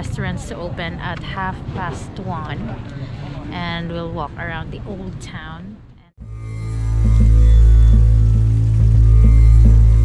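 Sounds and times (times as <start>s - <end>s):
background music with deep bass: 6.2s - 10.0s.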